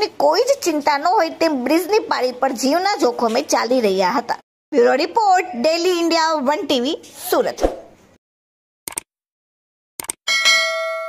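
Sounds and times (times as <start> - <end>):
bright bell ding: 10.3 - 11.0.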